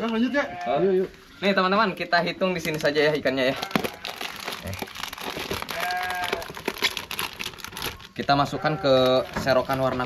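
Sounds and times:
plastic bag crinkling: 0:02.4 - 0:10.0.

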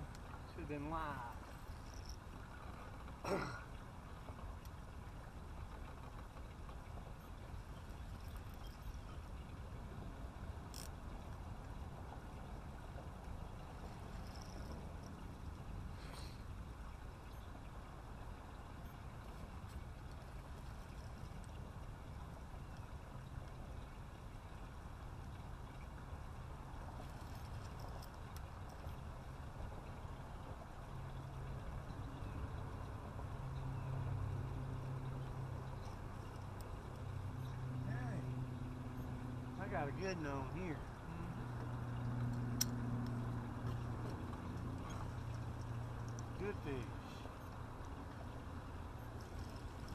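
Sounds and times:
low outdoor rumble on water: 0:00.0 - 0:49.9
motorboat engine hum: 0:00.0 - 0:49.9.

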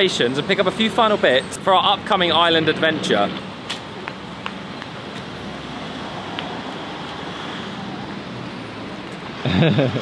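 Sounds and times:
road traffic hum: 0:00.0 - 0:10.0.

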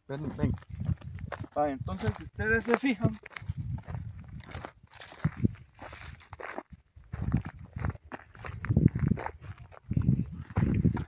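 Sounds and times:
footsteps crunching through dry grass: 0:00.2 - 0:11.0.

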